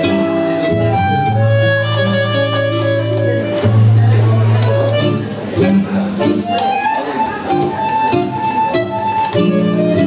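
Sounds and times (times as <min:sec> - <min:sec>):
bandoneon melody: 0:00.0 - 0:10.0
plucked guitar chords: 0:00.0 - 0:10.0.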